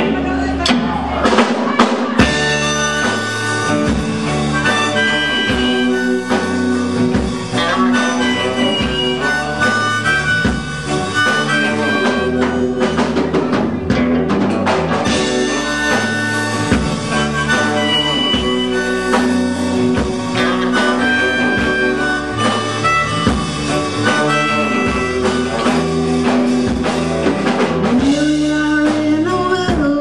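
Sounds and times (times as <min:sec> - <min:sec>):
long bending lead notes: 0:00.0 - 0:29.0
drum beat: 0:00.0 - 0:29.9
bass: 0:00.0 - 0:30.0.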